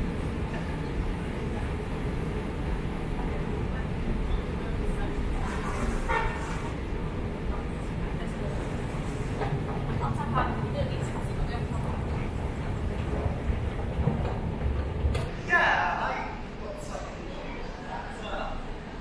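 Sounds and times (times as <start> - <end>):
low rumble in tiled concourse: 0.0 - 19.0
faint voices: 0.1 - 19.0.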